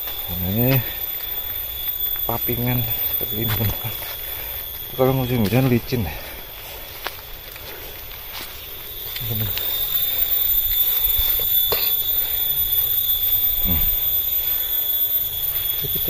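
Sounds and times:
outdoor background noise: 0.0s - 16.0s.

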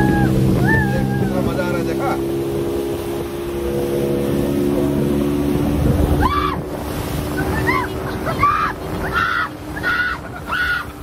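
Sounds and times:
motorboat engine drone: 0.0s - 11.0s.

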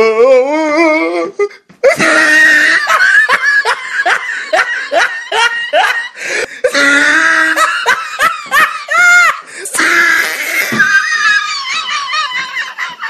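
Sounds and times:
person laughing hard: 1.8s - 13.0s.

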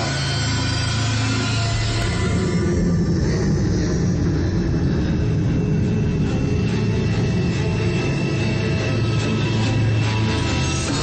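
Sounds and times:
advert soundtrack: 0.0s - 11.0s.

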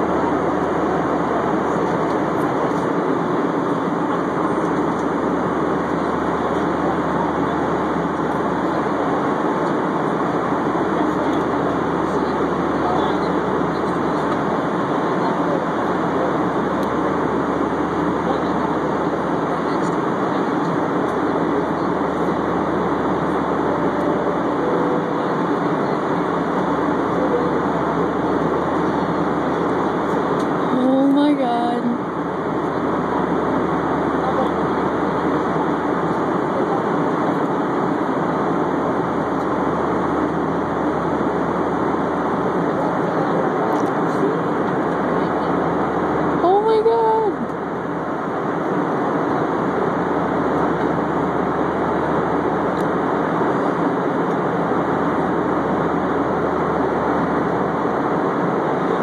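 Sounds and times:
airliner cabin engine rush: 0.0s - 59.0s.

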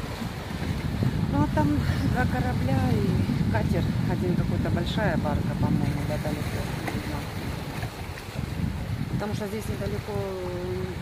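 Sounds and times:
small waves washing over rocks: 0.0s - 11.0s
wind noise on microphone: 0.0s - 11.0s.

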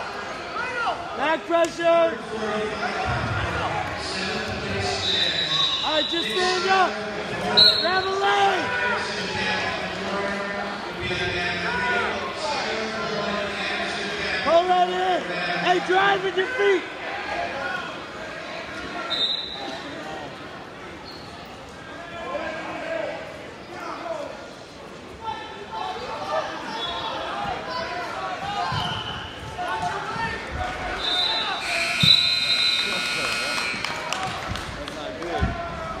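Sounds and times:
spectators shouting and chatter: 0.0s - 36.0s.

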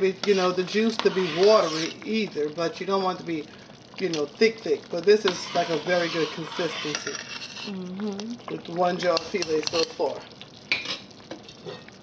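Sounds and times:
gumbo simmering bubbling: 0.0s - 12.0s.

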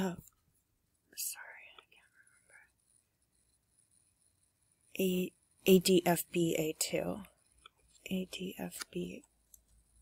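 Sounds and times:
man whispering: 1.2s - 2.7s.

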